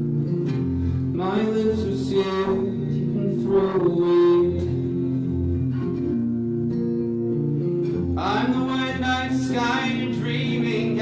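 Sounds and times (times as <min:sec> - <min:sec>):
acoustic guitar: 0:00.0 - 0:11.0
man singing: 0:01.0 - 0:05.6, 0:08.1 - 0:11.0.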